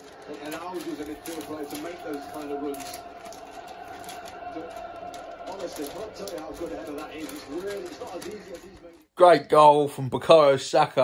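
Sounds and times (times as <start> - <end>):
flag rustling and flicking: 0.0 - 9.1.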